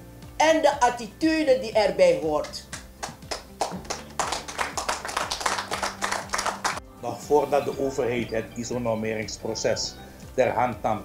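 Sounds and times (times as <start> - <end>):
audience applauding: 2.7 - 6.8.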